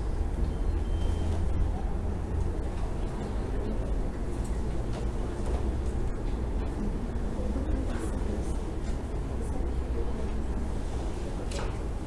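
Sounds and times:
lecture hall room rumble: 0.0s - 12.0s.

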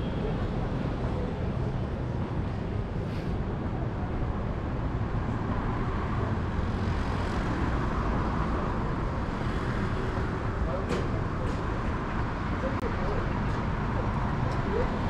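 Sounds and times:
city traffic noise: 0.0s - 15.0s
voices of passers-by: 0.0s - 15.0s.

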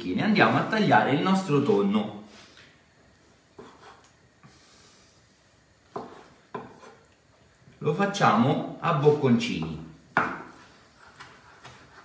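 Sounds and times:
knife knocking on cutting board: 10.2s - 10.6s.

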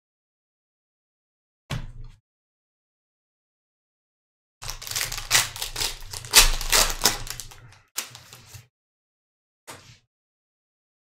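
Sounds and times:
foil pack tearing and crinkling: 4.6s - 8.6s.

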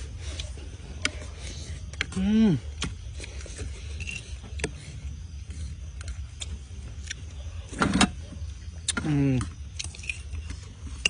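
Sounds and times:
steady low hum: 0.0s - 11.0s
person humming: 2.1s - 2.8s.

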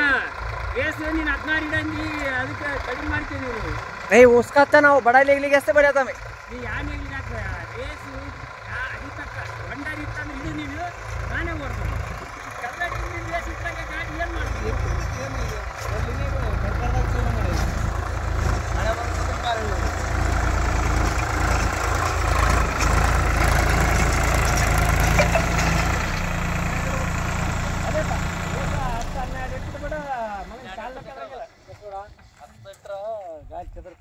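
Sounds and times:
tractor diesel engine running: 0.0s - 32.3s.

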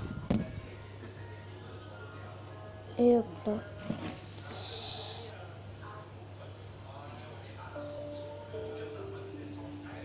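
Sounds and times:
low electrical hum: 7.6s - 10.0s.

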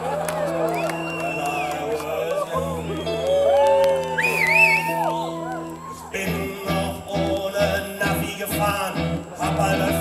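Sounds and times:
band with keyboard and electric guitar: 0.0s - 10.0s.

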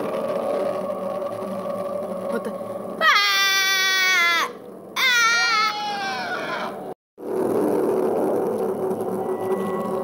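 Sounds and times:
person screaming: 3.0s - 6.8s.

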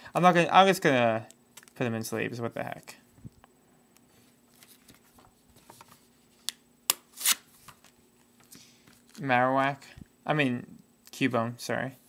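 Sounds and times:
card sliding into sleeve: 7.0s - 7.9s.

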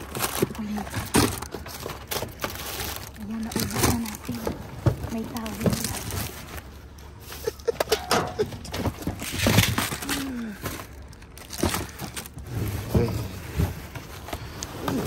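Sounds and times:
plastic packaging crinkling: 0.0s - 7.7s, 8.8s - 12.8s
cardboard boxes moved by hand: 8.4s - 15.0s.

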